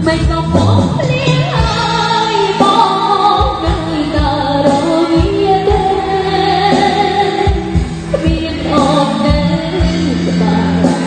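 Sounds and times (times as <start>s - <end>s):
bass guitar: 0.0s - 11.0s
electric guitar: 0.0s - 11.0s
keyboard: 0.0s - 11.0s
woman singing: 0.0s - 11.0s.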